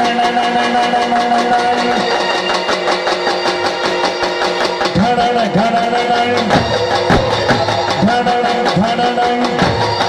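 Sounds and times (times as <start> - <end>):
drums playing a fast beat: 0.0 - 10.0
long held instrumental notes: 0.0 - 10.0.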